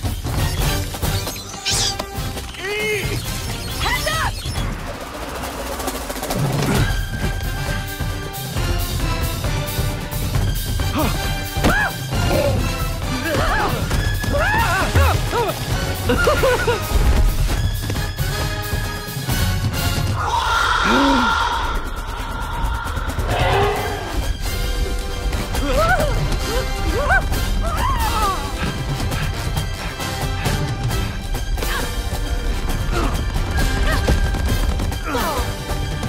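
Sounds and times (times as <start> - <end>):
action film score: 0.0 - 36.0
low rumble: 20.5 - 24.9.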